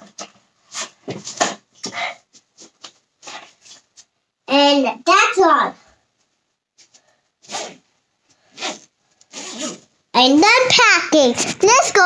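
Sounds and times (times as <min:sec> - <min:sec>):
bag zipper pulled: 0:07.4 - 0:07.8, 0:08.5 - 0:09.9.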